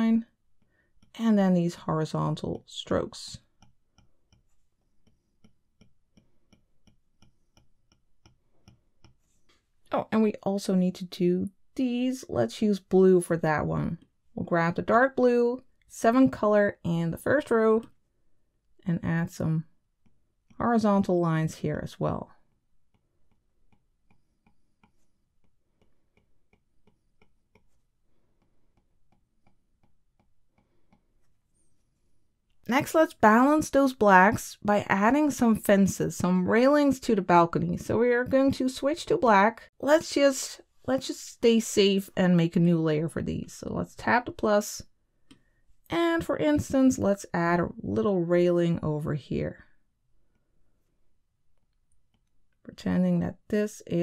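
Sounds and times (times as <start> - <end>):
stylus tapping glass screen: 3.3 - 9.4, 22.5 - 31.1.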